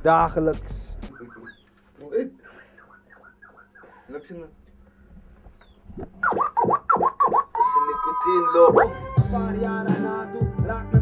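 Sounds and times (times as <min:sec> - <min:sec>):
record scratching: 0:05.9 - 0:09.0.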